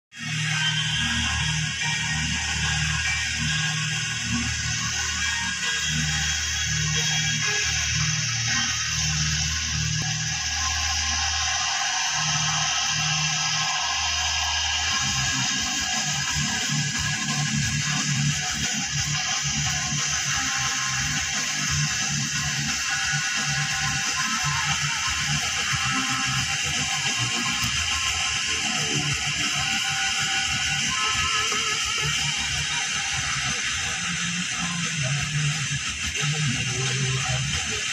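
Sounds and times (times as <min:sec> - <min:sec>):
radio music through car speakers: 0:00.2 - 0:37.9.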